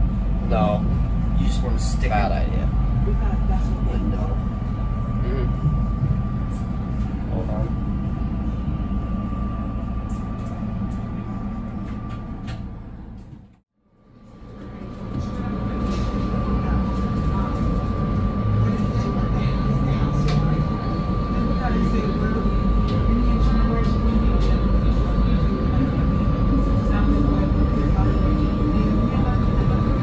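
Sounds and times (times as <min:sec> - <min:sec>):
thin whine: 0:00.0 - 0:13.4.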